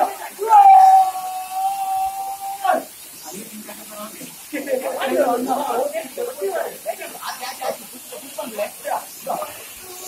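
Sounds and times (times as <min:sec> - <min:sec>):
person shouting long call: 0:00.4 - 0:02.9.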